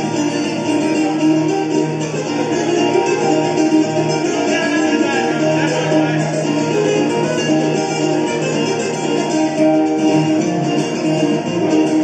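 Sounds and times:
accompanying guitar: 0.0 - 12.0
plucked steel-strung guitar solo: 0.0 - 12.0.

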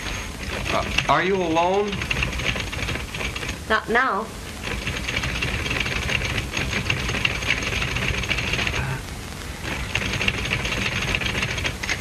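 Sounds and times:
film soundtrack hiss: 0.0 - 12.0
high whine: 0.0 - 12.0.

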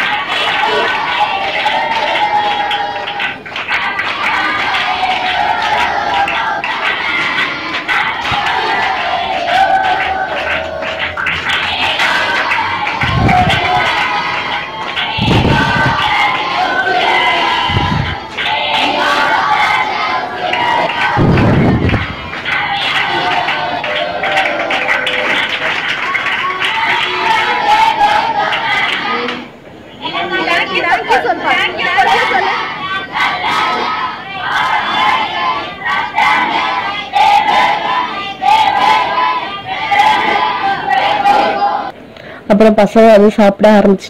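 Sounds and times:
children shouting and cheering: 0.0 - 42.0.

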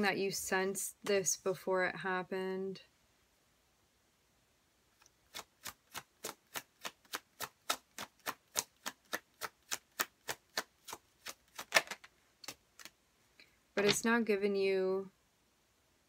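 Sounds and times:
cards being shuffled: 5.0 - 13.0.

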